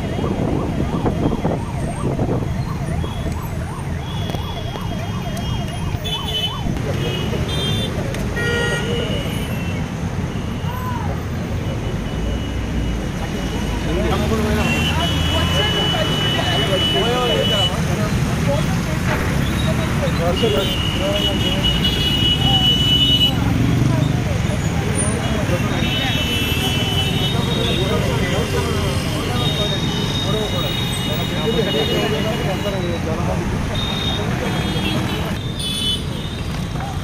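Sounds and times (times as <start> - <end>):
siren rising and falling: 0.0 - 6.9
road traffic rumble: 0.0 - 37.0
people talking: 13.2 - 35.4.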